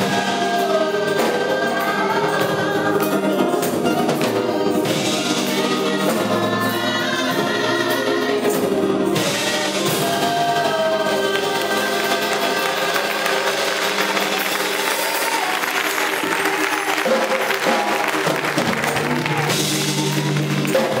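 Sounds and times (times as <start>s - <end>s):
drum kit: 0.0s - 21.0s
gospel band playing: 0.0s - 21.0s.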